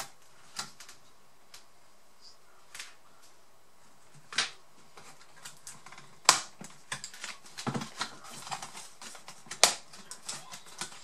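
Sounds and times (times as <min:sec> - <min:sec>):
sharp plastic knocks: 0:04.2 - 0:11.0.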